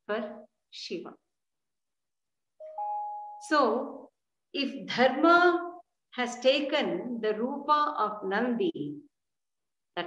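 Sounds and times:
woman speaking: 0.0s - 1.2s, 3.4s - 9.1s
steady two-pitched tone: 2.6s - 3.6s.

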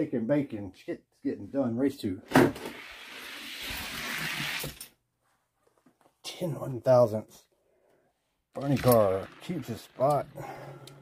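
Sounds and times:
toy cars release clack: 8.6s - 9.2s.

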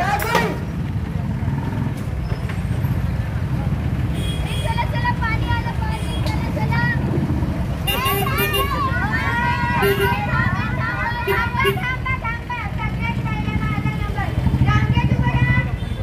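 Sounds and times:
steady low street rumble: 0.0s - 16.0s
scattered voices: 4.8s - 16.0s.

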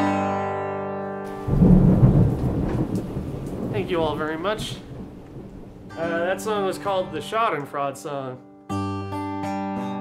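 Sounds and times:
rain: 1.3s - 6.9s
thunder rumble: 1.3s - 7.1s.

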